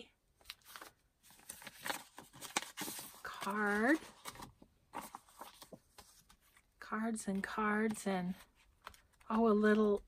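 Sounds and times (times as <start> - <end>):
paper cards rustling: 0.4 - 6.7, 7.8 - 10.0.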